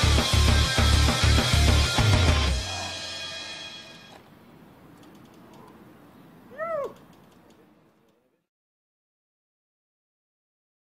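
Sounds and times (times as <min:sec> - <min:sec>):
faint background noise: 0:04.0 - 0:08.5
short meow-like call: 0:06.5 - 0:07.0.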